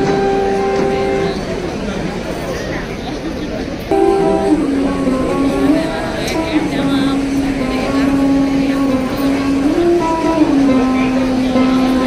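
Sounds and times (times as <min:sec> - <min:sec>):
plucked string note: 0:00.0 - 0:01.6, 0:03.9 - 0:12.0
murmur of voices: 0:00.0 - 0:12.0.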